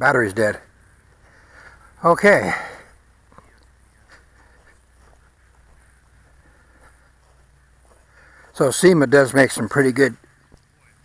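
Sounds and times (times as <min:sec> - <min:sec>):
low steady background hum: 0:00.0 - 0:11.0
footsteps crunching in dry grass: 0:00.3 - 0:11.0.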